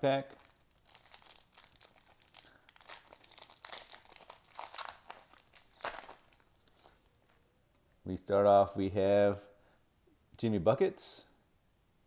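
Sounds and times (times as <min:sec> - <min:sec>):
foil wrapper tearing and crinkling: 0:00.4 - 0:07.4.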